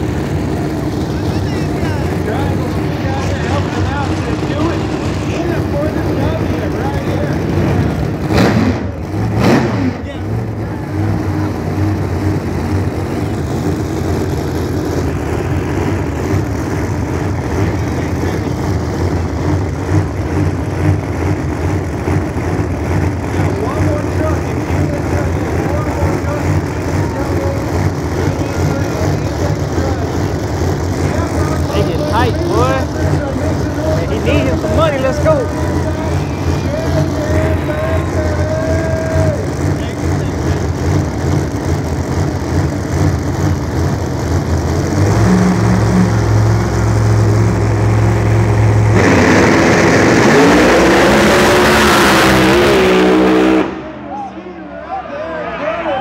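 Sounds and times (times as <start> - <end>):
race car engines idling: 0.0 - 56.0
race car engines revving: 0.0 - 56.0.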